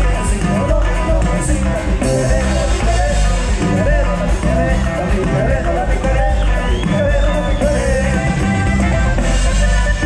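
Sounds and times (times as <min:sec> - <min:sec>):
person singing: 0:00.0 - 0:08.9
live band dance music: 0:00.0 - 0:10.0.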